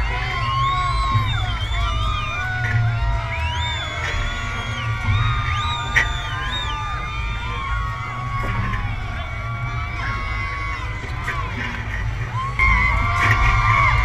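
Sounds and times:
crowd yelling and cheering: 0:00.0 - 0:14.0
low rumble: 0:00.0 - 0:14.0
music playing: 0:00.0 - 0:14.0.

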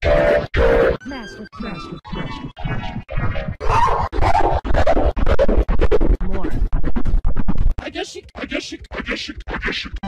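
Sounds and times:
stuttering chopped cartoon audio: 0:01.6 - 0:10.0.

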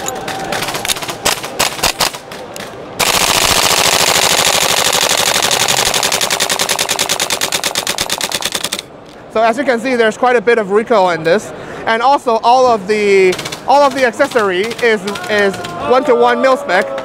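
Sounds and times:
airsoft rifle firing full auto: 0:03.0 - 0:08.9.

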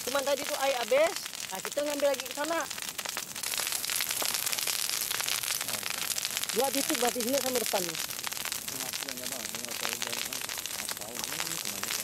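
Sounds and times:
burning brush crackling: 0:00.0 - 0:12.0
steady high hiss: 0:00.0 - 0:12.0.

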